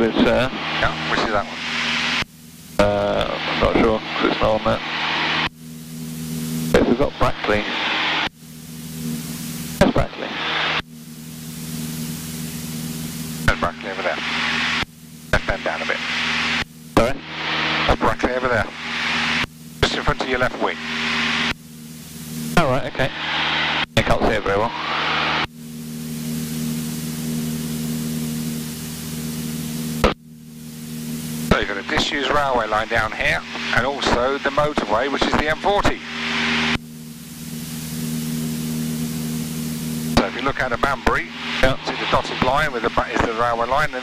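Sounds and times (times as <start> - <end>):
muffled voices over radio: 0.0 - 2.2, 2.8 - 5.5, 6.7 - 8.3, 9.8 - 10.8, 13.4 - 21.6, 22.5 - 25.5, 31.4 - 36.8, 40.1 - 44.0
aircraft engine droning: 0.0 - 44.0
radio hiss bursts: 0.0 - 44.0.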